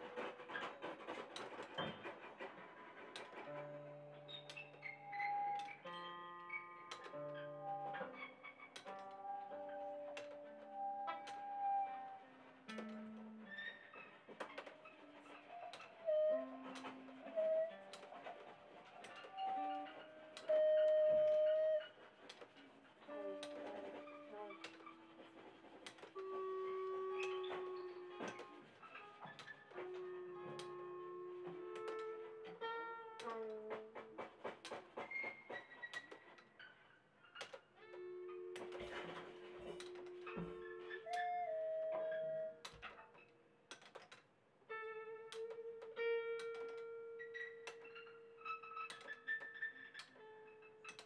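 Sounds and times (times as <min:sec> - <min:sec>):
scattered clicks and knocks: 0:00.0 - 0:36.6, 0:37.4 - 0:41.4, 0:42.6 - 0:44.3, 0:45.3 - 0:51.0.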